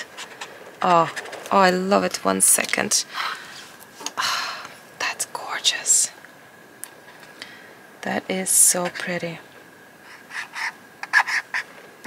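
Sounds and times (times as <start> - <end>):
brush marker scratching on paper: 10.1 - 11.7.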